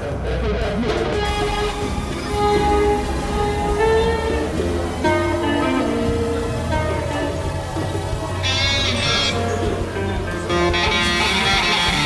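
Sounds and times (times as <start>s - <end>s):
electric guitar sustained notes: 0.0s - 12.0s
free jazz group improvising: 0.2s - 12.0s.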